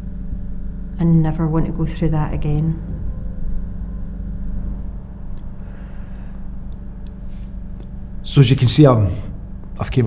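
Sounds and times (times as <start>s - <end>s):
low steady rumble: 0.0s - 10.0s.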